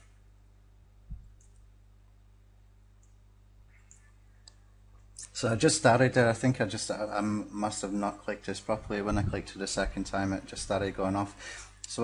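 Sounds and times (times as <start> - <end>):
low electrical hum: 0.0 - 12.0
computer mouse clicks: 1.2 - 1.7, 3.0 - 4.6.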